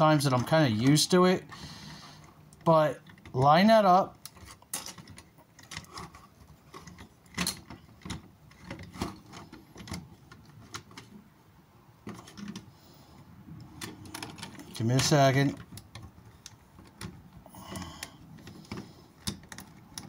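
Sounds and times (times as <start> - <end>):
plastic toy parts clicking: 4.2 - 11.1, 13.8 - 20.0.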